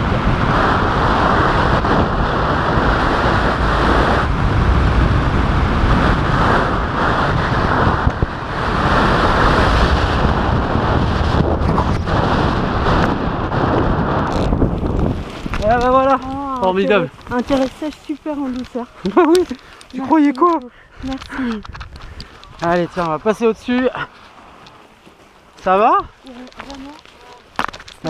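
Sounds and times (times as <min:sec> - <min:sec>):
wind buffeting camera microphone: 0:00.0 - 0:28.0.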